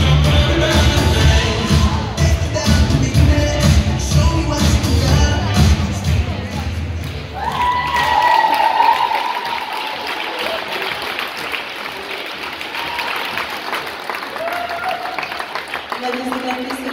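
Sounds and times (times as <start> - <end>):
audience applauding: 7.0 - 16.9
high cheer: 7.2 - 15.9.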